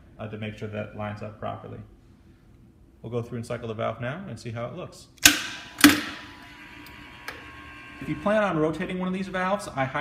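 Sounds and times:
steady hum with high tone: 0:05.1 - 0:10.0.

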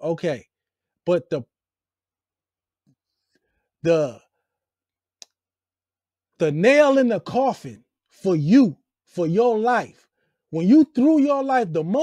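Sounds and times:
man speaking: 0:00.0 - 0:00.5, 0:01.1 - 0:01.5, 0:03.8 - 0:04.2, 0:06.4 - 0:09.9, 0:10.6 - 0:12.0.

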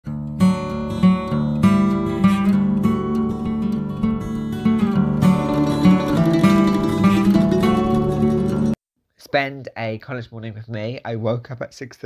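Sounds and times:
acoustic guitar strumming chords: 0:00.1 - 0:08.8.

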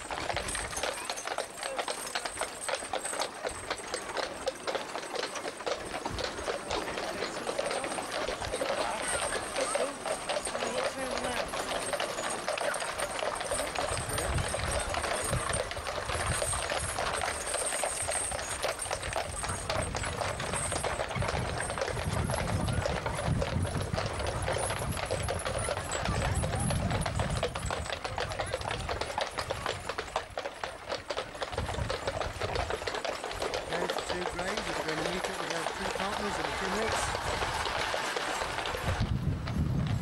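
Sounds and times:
horse hooves on paved road: 0:00.0 - 0:40.0.

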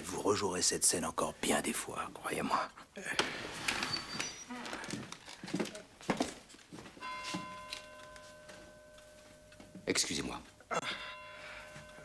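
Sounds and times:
bell chime ringing: 0:07.0 - 0:12.0.

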